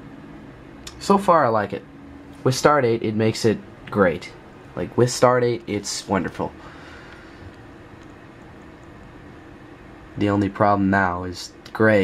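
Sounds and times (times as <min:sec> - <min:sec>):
low hiss and hum: 0:00.0 - 0:12.0.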